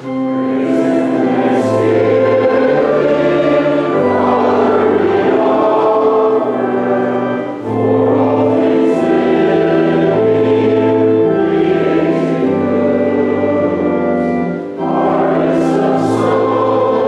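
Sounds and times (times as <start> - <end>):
choir singing a hymn: 0.0 - 17.0.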